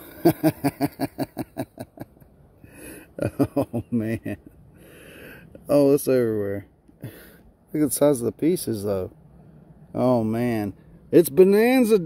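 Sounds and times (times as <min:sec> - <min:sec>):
man laughing: 0:00.0 - 0:04.6.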